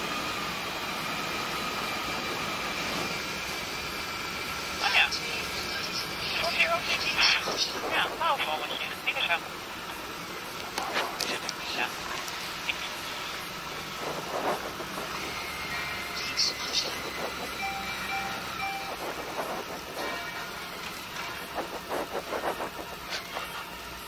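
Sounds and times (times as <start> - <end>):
road noise: 0.0 - 24.0
motorcycle engine running: 11.9 - 24.0
wind noise: 13.8 - 15.4, 18.8 - 23.6.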